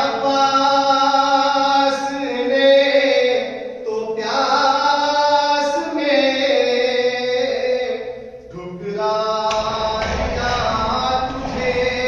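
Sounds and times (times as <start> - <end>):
man chanting unaccompanied: 0.0 - 10.1.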